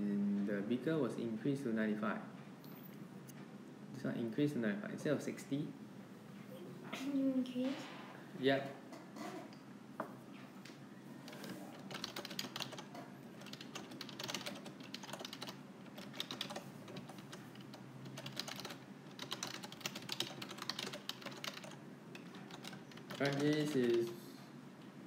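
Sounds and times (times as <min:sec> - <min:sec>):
typing on a keyboard: 0:11.3 - 0:24.2.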